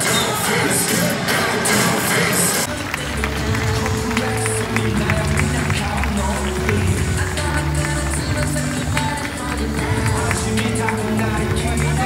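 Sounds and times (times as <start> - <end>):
dense arena noise: 0.0 - 12.0.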